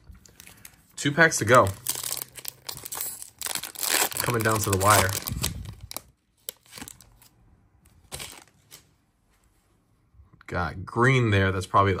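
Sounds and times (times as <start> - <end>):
wrapper and cards rustling: 0.0 - 9.0
foil wrapper crinkling and tearing: 1.5 - 7.2.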